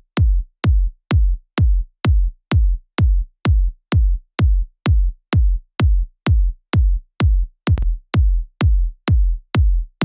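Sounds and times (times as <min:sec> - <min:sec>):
electronic kick drum: 0:00.0 - 0:10.0.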